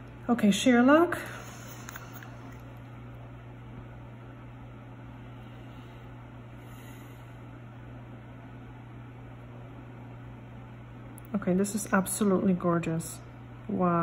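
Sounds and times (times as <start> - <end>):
low hum: 0.0 - 14.0.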